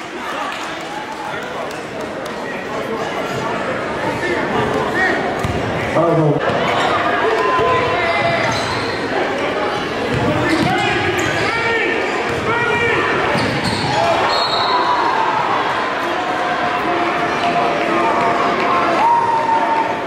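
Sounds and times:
crowd chatter: 0:00.0 - 0:20.0
sneaker squeaks: 0:08.0 - 0:09.1, 0:13.3 - 0:14.9.

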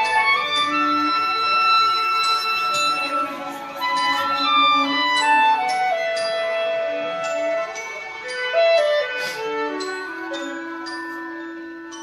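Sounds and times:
woodwind long held notes: 0:00.0 - 0:12.0.

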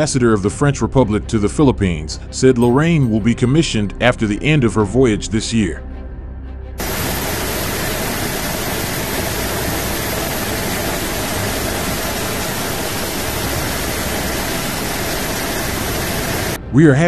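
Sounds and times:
loud rushing hiss: 0:06.8 - 0:16.6.

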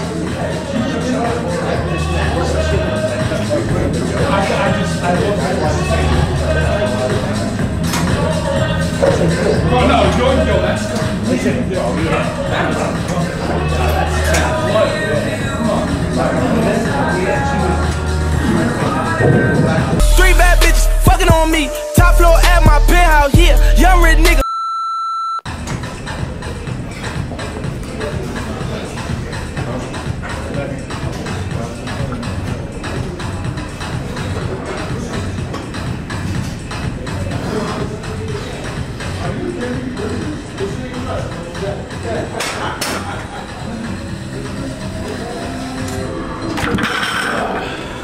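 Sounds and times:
electronic background music: 0:00.0 - 0:24.5, 0:25.5 - 0:48.0
high electronic beep: 0:24.4 - 0:25.5.

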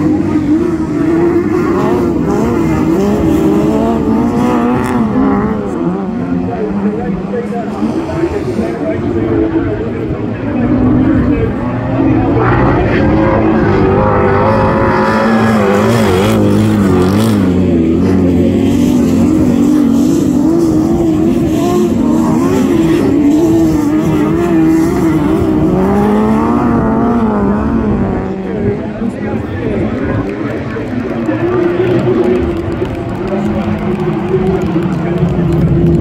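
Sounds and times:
car engines revving: 0:00.0 - 0:36.0.

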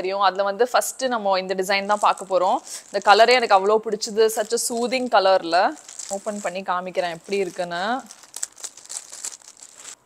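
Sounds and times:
plastic bag crinkling: 0:01.6 - 0:10.0.

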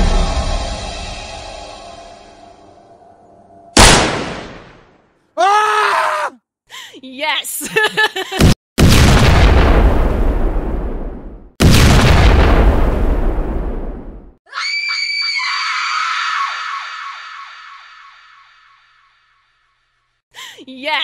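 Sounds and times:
loud explosions: 0:03.8 - 0:05.0, 0:08.8 - 0:14.4
long high-pitched scream: 0:05.4 - 0:06.4, 0:14.5 - 0:19.2.

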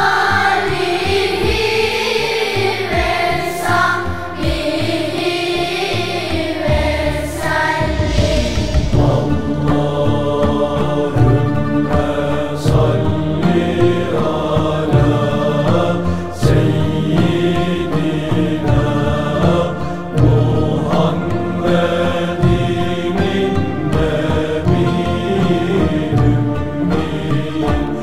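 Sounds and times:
chant-like voices: 0:00.0 - 0:28.0
instrumental accompaniment: 0:00.0 - 0:28.0
short percussive strikes: 0:07.8 - 0:10.6.

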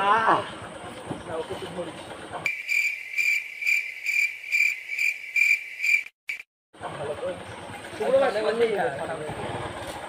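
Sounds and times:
cricket chirping: 0:02.5 - 0:06.4.

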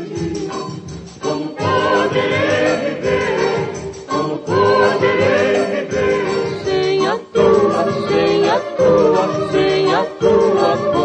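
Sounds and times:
old record of harmony singing: 0:00.0 - 0:11.0.

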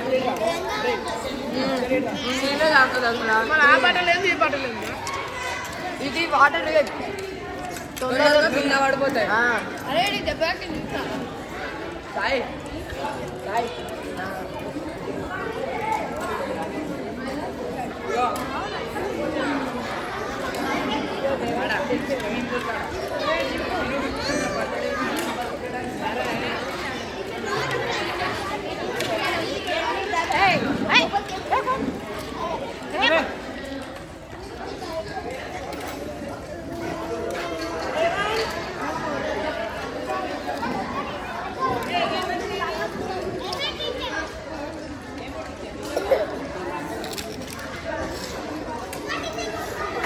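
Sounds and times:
babble of overlapping voices: 0:00.0 - 0:50.0
children chattering: 0:00.0 - 0:50.0.

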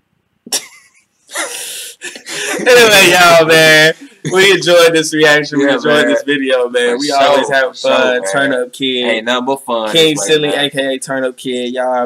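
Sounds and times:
man laughing: 0:00.5 - 0:08.5, 0:09.9 - 0:10.7.

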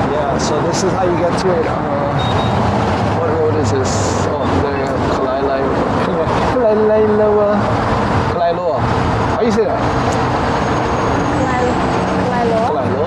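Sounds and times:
people's voices: 0:00.0 - 0:10.3, 0:11.0 - 0:13.0
cars and trucks passing: 0:00.0 - 0:13.0.

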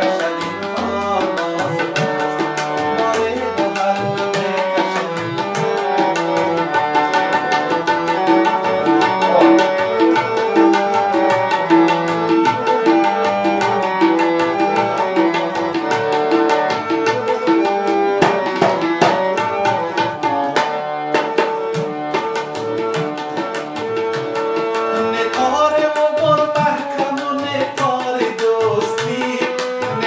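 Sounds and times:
fast tabla strokes: 0:00.0 - 0:30.0
harmonium melody: 0:00.0 - 0:30.0.

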